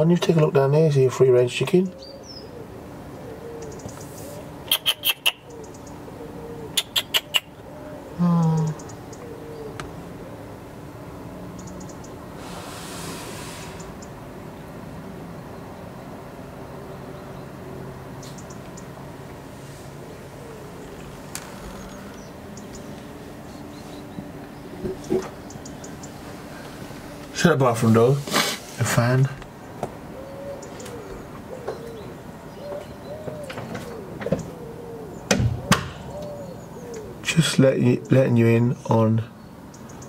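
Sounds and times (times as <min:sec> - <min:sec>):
faint bird chirps: 0:01.9 - 0:10.5, 0:18.2 - 0:18.9, 0:20.0 - 0:26.7.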